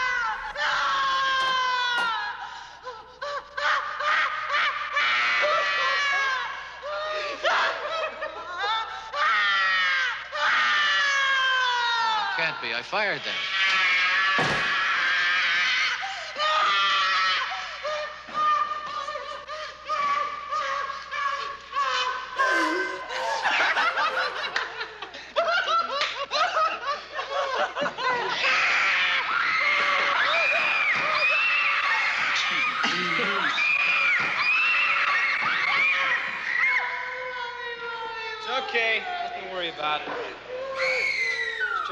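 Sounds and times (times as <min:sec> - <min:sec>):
people laughing: 0:00.0 - 0:09.2, 0:18.1 - 0:29.1, 0:29.7 - 0:33.8
young men laughing: 0:20.9 - 0:28.6
long high-pitched screams: 0:40.7 - 0:41.9.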